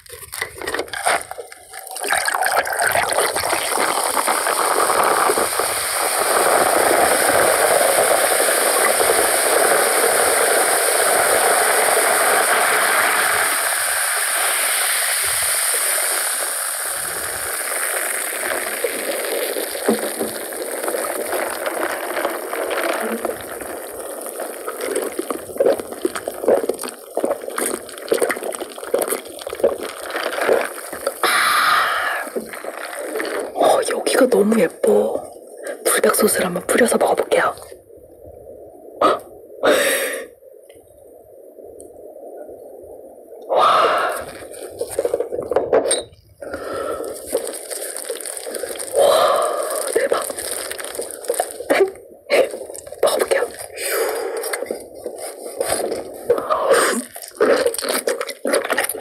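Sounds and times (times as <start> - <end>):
cola fizzing: 0.0 - 37.8, 43.4 - 59.0
cola pouring into glass with ice: 0.2 - 10.3, 14.4 - 33.9, 43.9 - 51.8.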